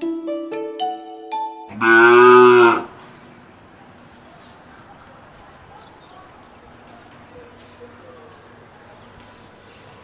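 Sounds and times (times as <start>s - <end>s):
cow mooing: 1.7s - 3.0s.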